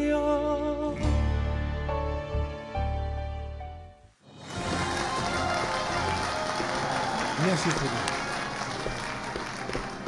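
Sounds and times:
audience applauding: 4.3 - 10.0.

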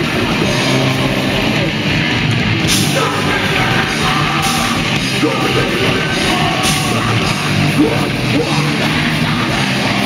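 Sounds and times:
distorted electric guitar: 0.0 - 10.0
drum kit: 0.0 - 10.0
singer yelling: 2.8 - 10.0.

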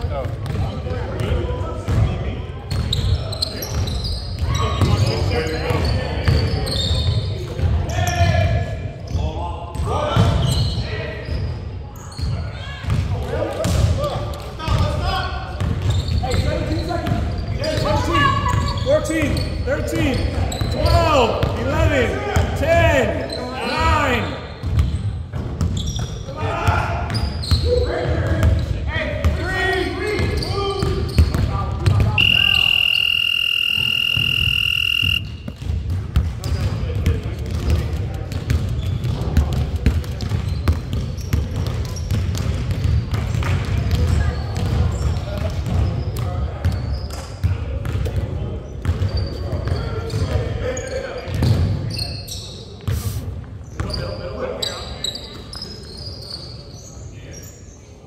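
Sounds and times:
sneakers squeaking on floor: 1.9 - 8.3, 9.0 - 13.8, 15.5 - 21.6, 24.4 - 26.3, 27.1 - 28.8, 30.0 - 48.0, 48.7 - 53.0, 53.6 - 57.8
basketball bouncing: 30.2 - 45.9
players calling out: 32.1 - 35.4
scoreboard buzzer: 32.2 - 35.2.

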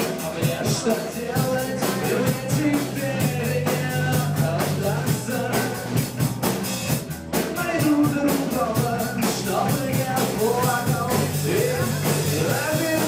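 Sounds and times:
drum kit beat: 0.0 - 13.0
guitar: 0.0 - 13.0
person singing: 0.0 - 13.0.

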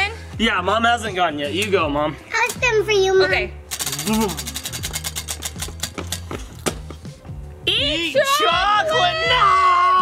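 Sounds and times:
prize wheel flapper clicking: 3.7 - 6.3.

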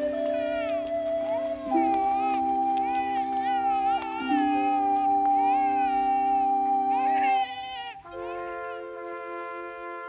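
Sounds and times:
newborn baby crying: 0.0 - 9.0
music of long held notes: 0.0 - 10.0.

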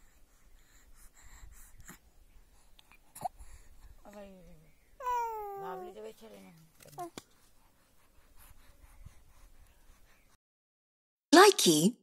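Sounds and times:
infant squealing and cooing: 5.0 - 5.9.

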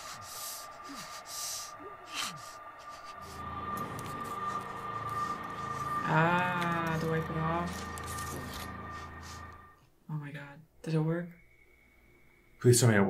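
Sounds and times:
soft breaths and sighs: 0.0 - 5.5
low droning chord: 0.0 - 9.8
steady high tone: 0.0 - 9.8.

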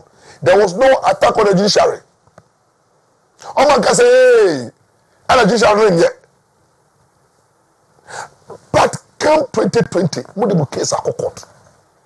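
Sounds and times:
sharp breath: 0.1 - 0.4, 8.0 - 8.5
man talking: 0.4 - 2.0, 3.4 - 6.3, 8.5 - 11.5.

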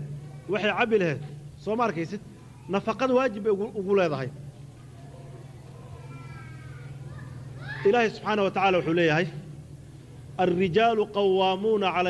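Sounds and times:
low electrical hum: 0.0 - 12.0
faint high-pitched cry: 5.8 - 8.1.

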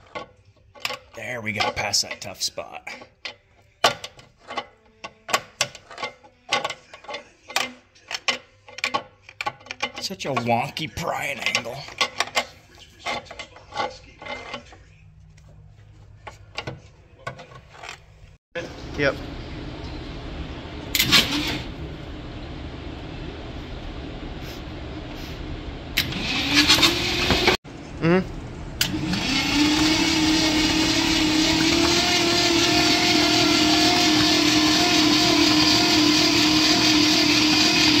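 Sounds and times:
starter motor cranking engine: 20.9 - 21.7.

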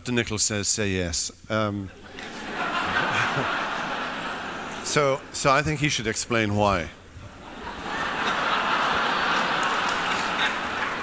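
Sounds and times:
audience applause: 7.4 - 11.0.

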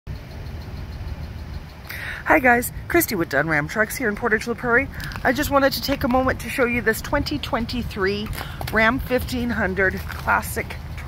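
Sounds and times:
truck engine idling: 0.1 - 11.0.

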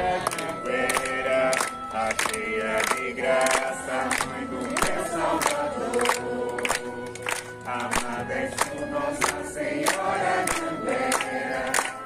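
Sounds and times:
crowd singing a hymn: 0.0 - 12.0
hands clapping in time: 0.0 - 12.0.

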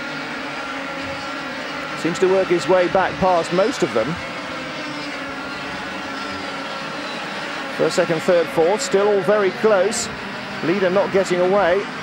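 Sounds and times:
racing karts engine drone: 0.0 - 12.0.

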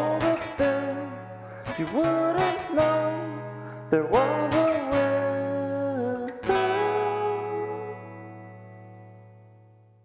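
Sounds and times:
person singing: 0.0 - 8.5
acoustic guitar strumming: 0.0 - 10.0.

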